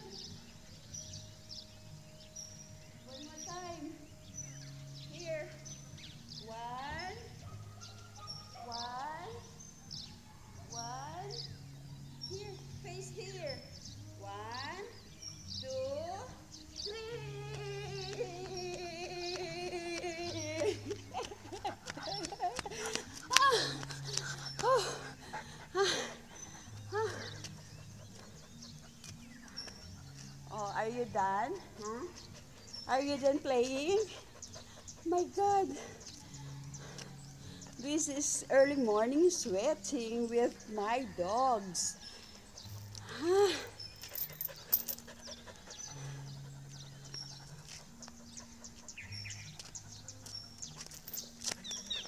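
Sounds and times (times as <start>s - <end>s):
flip-flop footsteps on concrete: 17.5s - 25.0s, 47.1s - 52.0s
dog panting: 21.2s - 30.5s, 32.1s - 37.8s, 44.3s - 52.0s
metal chain clinking: 43.6s - 45.4s, 50.6s - 52.0s.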